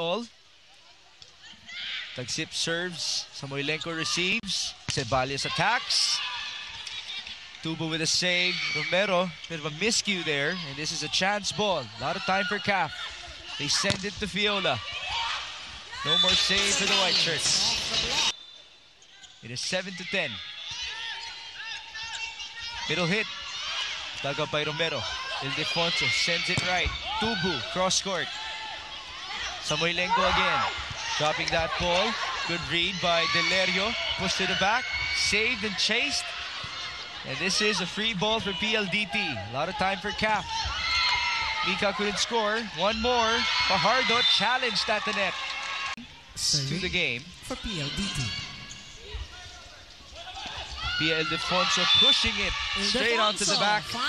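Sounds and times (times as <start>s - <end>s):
arena crowd noise: 0.0s - 54.0s
shoes squeaking on court: 16.0s - 18.4s.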